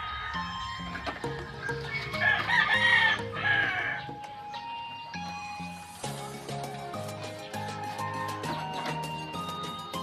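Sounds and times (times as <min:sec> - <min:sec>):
rooster crowing: 0:00.0 - 0:01.0, 0:02.0 - 0:04.1
background music: 0:00.0 - 0:10.0.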